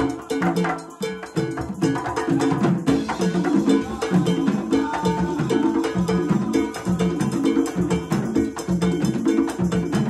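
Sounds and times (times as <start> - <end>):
conga drums playing: 0.0 - 10.0
cowbell keeping time: 0.0 - 10.0.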